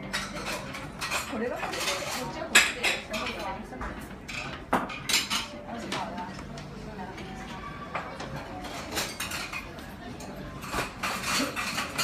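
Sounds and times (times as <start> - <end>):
plates and cutlery clinking: 0.0 - 12.0.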